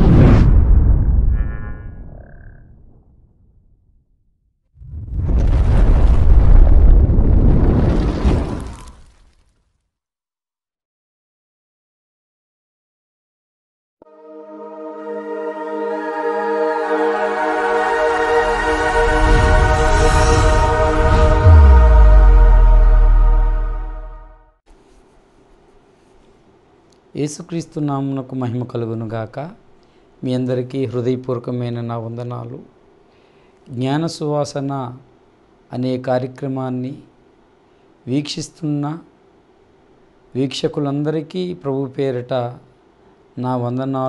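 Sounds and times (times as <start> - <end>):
held chord intro music: 14.0 - 24.5
high shimmering tone: 14.1 - 24.4
soft whoosh: 18.9 - 24.3
deep rumble of heavy hit: 19.5 - 24.4.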